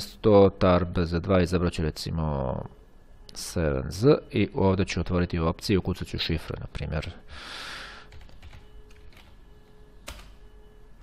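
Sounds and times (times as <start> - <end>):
keyboard keystrokes: 8.1 - 9.4, 10.0 - 10.4.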